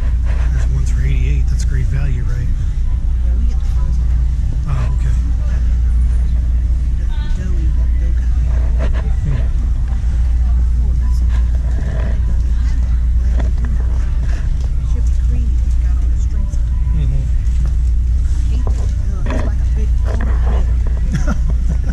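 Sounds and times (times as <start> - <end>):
faint voices: 0.0 - 21.9
steady low rumble: 0.0 - 21.9.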